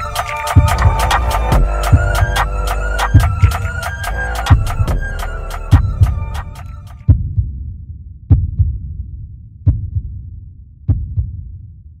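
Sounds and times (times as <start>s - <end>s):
deep heartbeat thumps: 0.5s - 11.8s.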